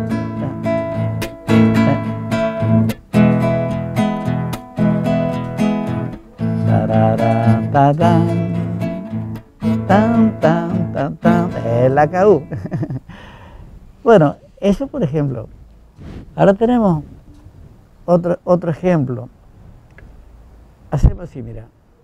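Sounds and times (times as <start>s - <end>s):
classical guitar strumming chords: 0.0s - 13.0s.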